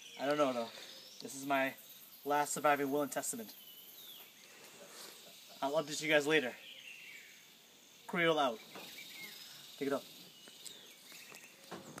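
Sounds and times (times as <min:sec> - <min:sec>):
high insect drone: 0:00.5 - 0:11.1.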